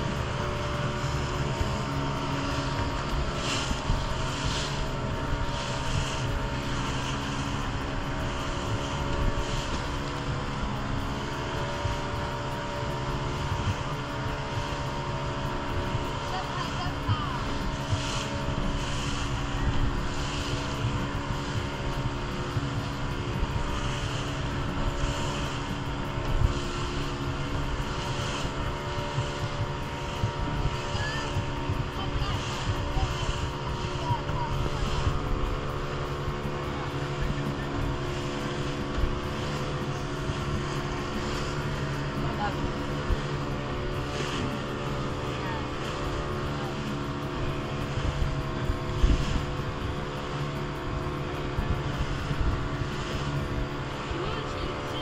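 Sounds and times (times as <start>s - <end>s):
motorboat engine droning: 0.0s - 55.0s
water splashing against hull: 0.0s - 55.0s.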